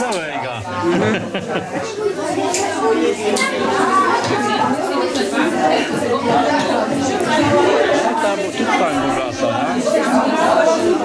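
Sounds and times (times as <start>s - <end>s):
children and adults talking: 0.0s - 11.0s.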